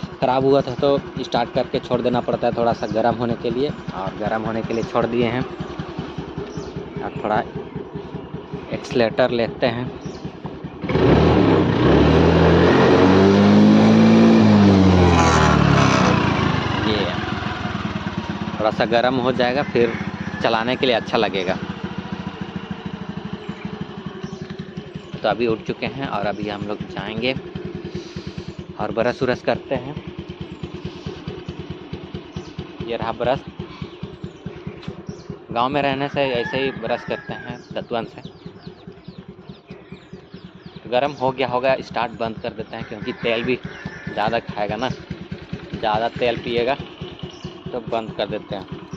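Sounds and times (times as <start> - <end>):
scooter engine revving: 0.0 - 48.9.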